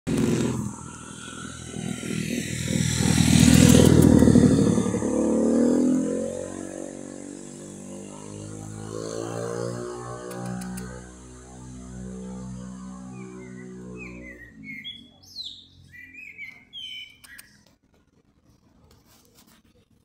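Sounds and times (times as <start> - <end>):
vehicle engine rumble passing: 0.1 - 16.7.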